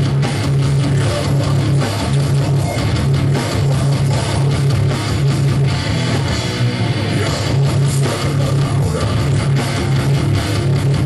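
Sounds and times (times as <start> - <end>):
distorted electric guitars and bass: 0.0 - 11.0
fast drums: 0.0 - 11.0.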